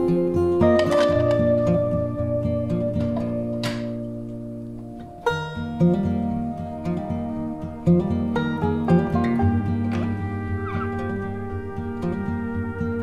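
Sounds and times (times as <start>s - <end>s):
plucked guitar over sustained tones: 0.0s - 13.0s.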